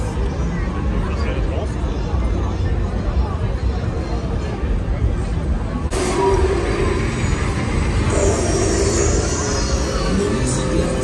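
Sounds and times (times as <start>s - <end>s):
crowd noise: 0.0s - 11.0s
loud music with heavy bass: 5.9s - 11.0s.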